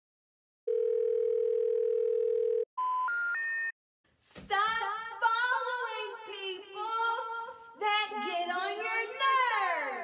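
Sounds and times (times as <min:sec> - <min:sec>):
steady telephone tone: 0:00.7 - 0:03.7.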